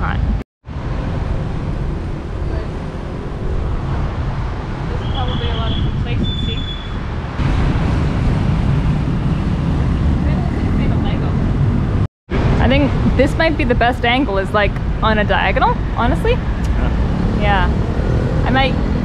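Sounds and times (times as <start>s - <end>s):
road traffic noise: 0.0s - 19.0s
wind on microphone: 0.0s - 19.0s.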